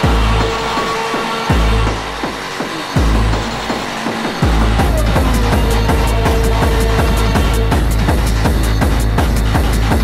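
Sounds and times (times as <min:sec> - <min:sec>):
acid tekno music: 0:00.0 - 0:10.0
falling pitch sweeps: 0:00.6 - 0:07.8
heavy bass kick: 0:03.0 - 0:03.6, 0:04.4 - 0:10.0.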